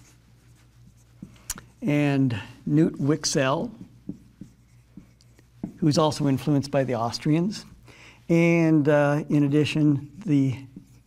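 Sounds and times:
marker writing on whiteboard: 0:00.0 - 0:02.0, 0:02.7 - 0:07.1, 0:10.2 - 0:11.0
man speaking: 0:01.8 - 0:03.8, 0:05.8 - 0:07.7, 0:08.3 - 0:10.7.

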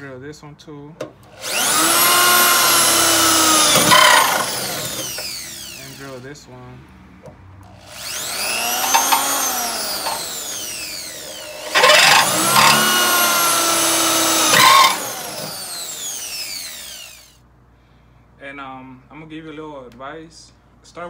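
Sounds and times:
electric drill drilling steel: 0:01.3 - 0:06.2, 0:07.8 - 0:17.4.

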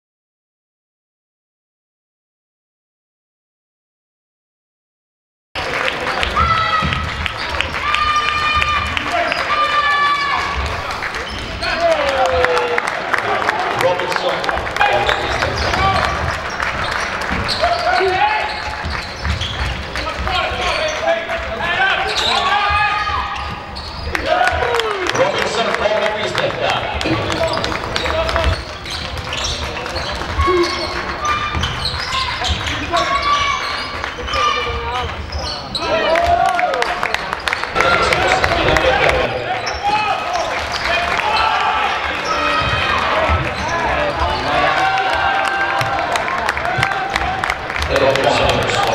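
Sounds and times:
voices of players and crowd: 0:05.6 - 0:48.9
shoes squeaking on floor: 0:14.8 - 0:24.3, 0:27.0 - 0:36.0, 0:42.2 - 0:44.8
basketball bouncing on court: 0:27.0 - 0:33.9
people calling out: 0:30.3 - 0:36.8.

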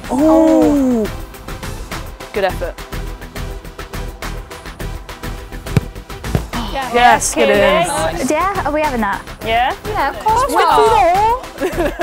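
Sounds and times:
music with steady beat: 0:02.8 - 0:12.0
football kicked hard: 0:05.6 - 0:06.6
ball thudding on board: 0:05.7 - 0:06.6
voices: 0:06.4 - 0:11.5.

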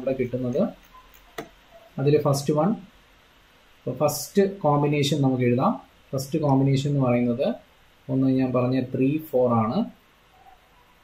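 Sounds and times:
man talking: 0:00.0 - 0:00.8, 0:02.0 - 0:02.8.

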